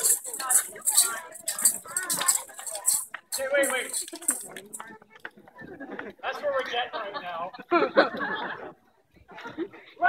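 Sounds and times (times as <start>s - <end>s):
people talking: 0.0s - 7.6s.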